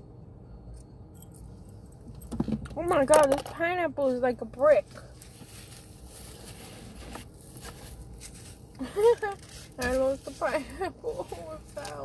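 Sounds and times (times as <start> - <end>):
faint clicks and rustles: 4.8 - 12.0.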